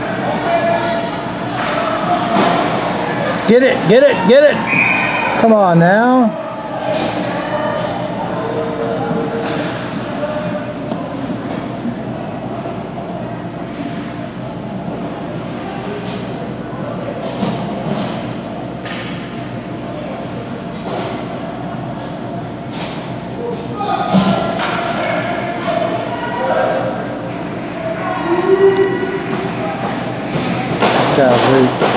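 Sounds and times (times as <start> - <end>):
indistinct voices echoing: 23.2 - 31.9.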